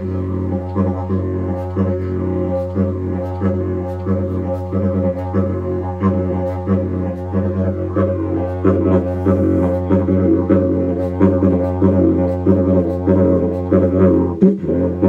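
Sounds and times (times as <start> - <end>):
didgeridoo drone with rhythmic pulses: 0.0 - 15.0.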